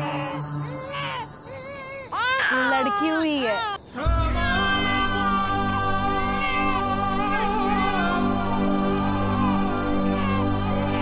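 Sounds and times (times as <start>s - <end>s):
newborn baby crying: 0.0s - 8.3s, 9.2s - 11.0s.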